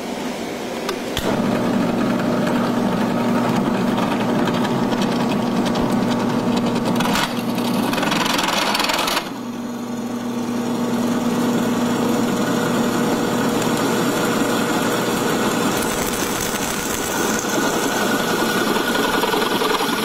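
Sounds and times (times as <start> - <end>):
drill press cutting metal: 0.9 - 9.6, 10.7 - 20.0.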